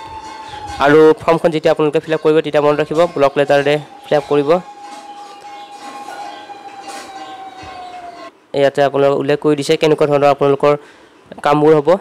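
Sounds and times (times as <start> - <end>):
steady whistle-like tone: 0.0 - 1.6, 2.6 - 8.3
faint background hiss: 0.0 - 12.0.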